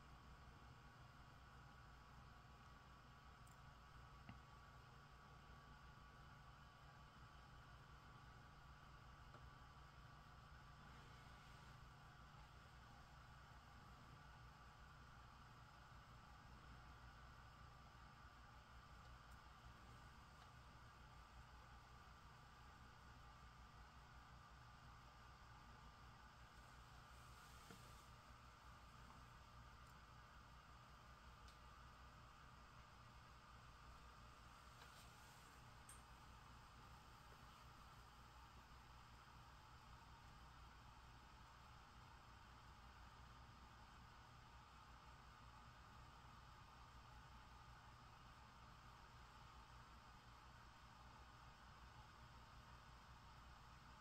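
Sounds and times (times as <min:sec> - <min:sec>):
cooling fan whirring: 0:00.0 - 0:50.7.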